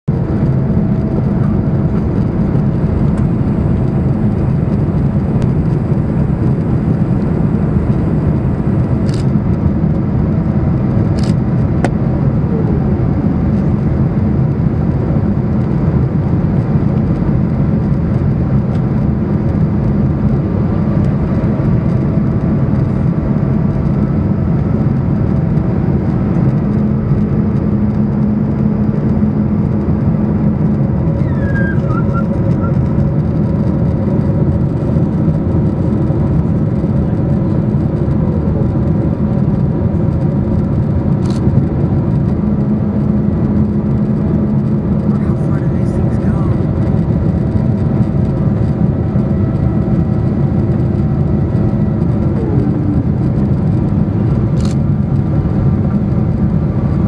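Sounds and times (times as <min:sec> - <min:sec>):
aircraft cabin engine and airflow rush: 0:00.0 - 0:57.0.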